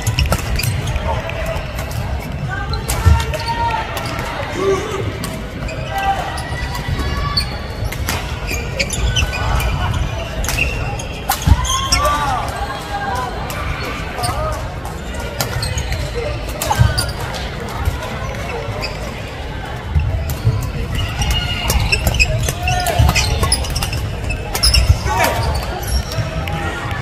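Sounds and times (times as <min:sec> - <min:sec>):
echoing voices and chatter: 0:00.0 - 0:27.0.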